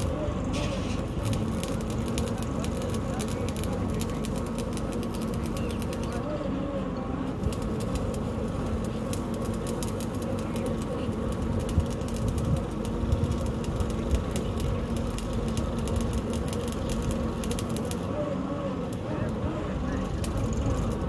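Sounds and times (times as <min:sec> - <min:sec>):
drilling rig engine drone: 0:00.0 - 0:21.0
rapid drilling ticking: 0:01.0 - 0:06.3, 0:07.4 - 0:18.1, 0:18.9 - 0:21.0.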